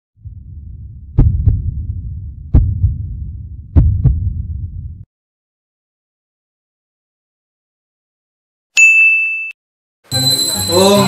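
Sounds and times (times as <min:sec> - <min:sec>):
heartbeat thumps: 0:00.2 - 0:05.0
low rumble: 0:00.2 - 0:05.1.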